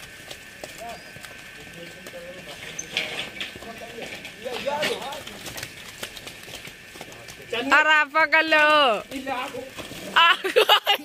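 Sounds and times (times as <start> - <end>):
cattle hooves knocking: 0.0 - 10.3
distant men calling: 0.0 - 10.6.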